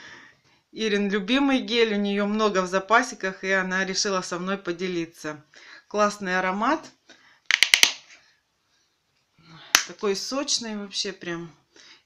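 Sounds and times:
plastic bottle clicks: 7.5 - 8.0.

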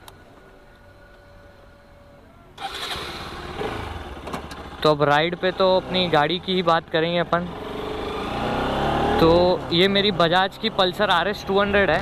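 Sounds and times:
motorcycle engine starting and idling: 2.6 - 9.9.

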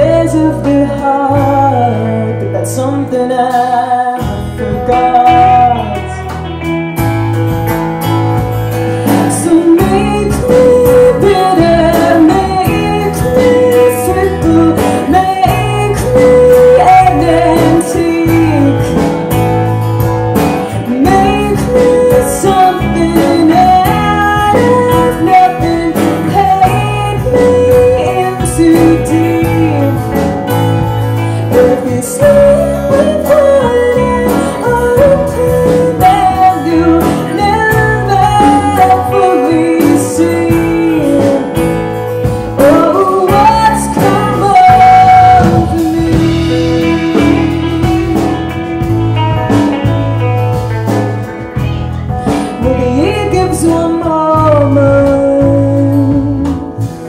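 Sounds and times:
woman singing: 0.0 - 6.8, 8.0 - 19.7, 20.5 - 57.0
drum kit: 0.0 - 57.0
electric guitars: 0.0 - 57.0.

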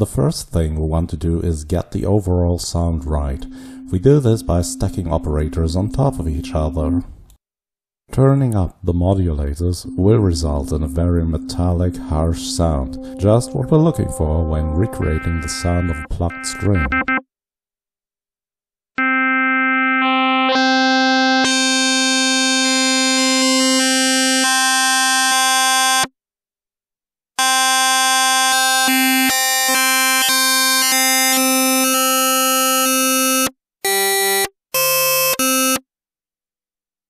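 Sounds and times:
synthesizer notes: 2.8 - 7.1, 9.3 - 17.2.

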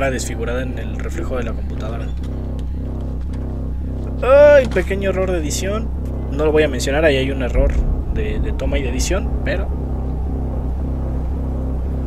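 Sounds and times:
low drone: 0.0 - 12.0
soft pulsing tone: 0.0 - 12.0.

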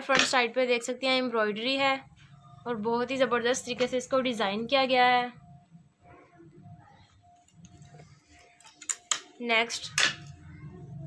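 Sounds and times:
faint low hum: 1.8 - 8.8, 9.5 - 11.0.

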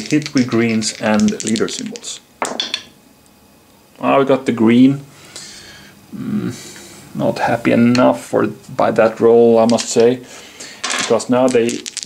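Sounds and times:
wooden dice clattering in tray: 0.0 - 2.6, 9.6 - 10.2, 10.8 - 12.0.

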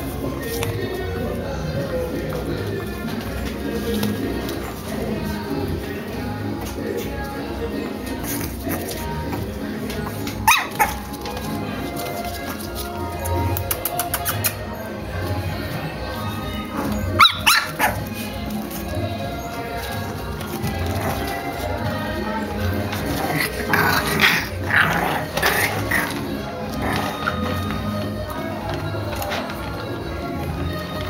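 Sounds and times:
background music: 0.0 - 31.0
puppies growling: 0.0 - 31.0
puppy yipping: 10.4 - 11.1, 16.8 - 18.2.

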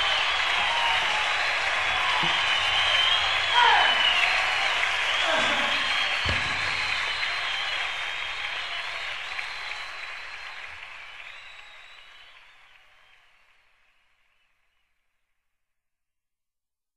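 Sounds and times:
audience applause: 0.0 - 14.1.

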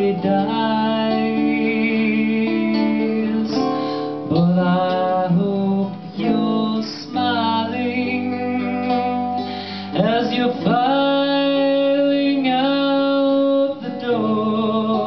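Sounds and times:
acoustic guitar strumming: 0.0 - 15.0
man singing with vibrato: 0.0 - 15.0.

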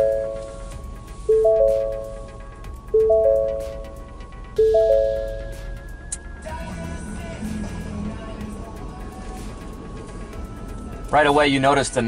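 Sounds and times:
dashboard chime tones: 0.0 - 6.2
truck engine starting and idling: 0.0 - 12.0.

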